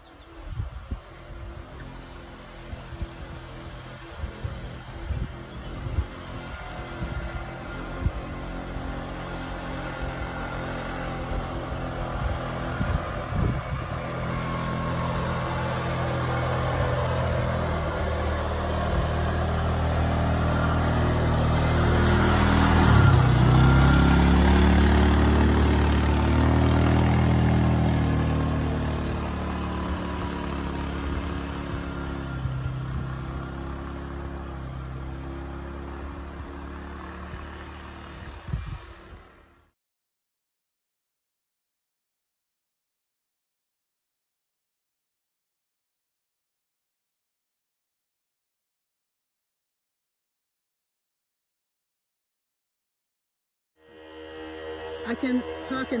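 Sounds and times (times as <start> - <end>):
tracked atv engine passing: 0.0 - 39.8, 53.8 - 56.0.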